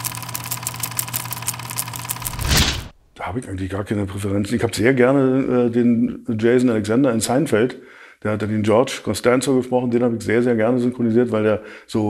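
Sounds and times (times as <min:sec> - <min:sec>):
film projector clattering: 0:00.0 - 0:02.9.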